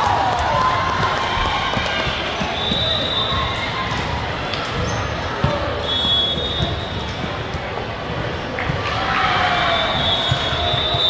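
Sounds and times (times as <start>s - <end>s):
voices of players and spectators: 0.0s - 11.0s.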